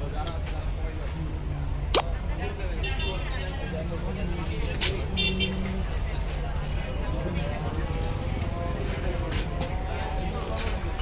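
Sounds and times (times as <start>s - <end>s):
people's voices: 0.0s - 11.0s
traffic rumble: 0.0s - 11.0s.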